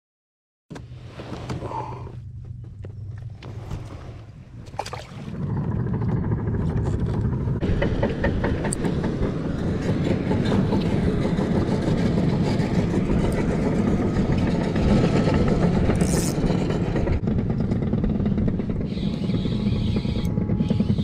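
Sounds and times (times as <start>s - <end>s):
wind buffeting microphone: 3.3s - 21.0s.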